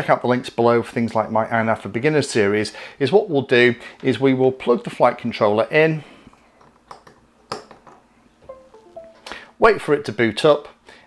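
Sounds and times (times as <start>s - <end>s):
falling device-connected chime: 8.5s - 9.4s.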